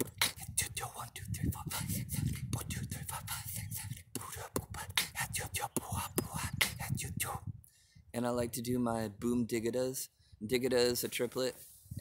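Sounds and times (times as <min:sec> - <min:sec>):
person beatboxing: 0:00.0 - 0:07.5.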